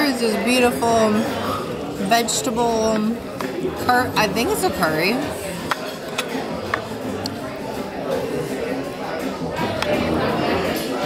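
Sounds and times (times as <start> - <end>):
diners chattering: 0.0 - 11.0.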